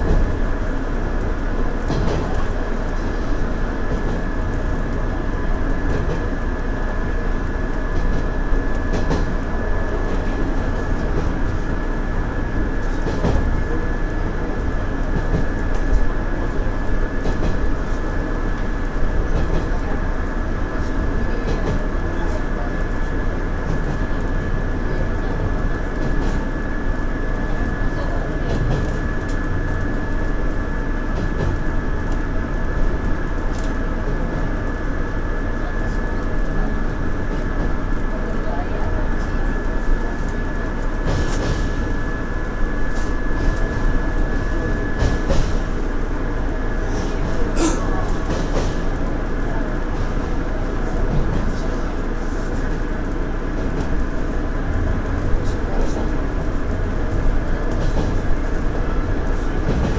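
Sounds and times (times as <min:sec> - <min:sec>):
train wheels on rail: 0:00.0 - 0:59.9.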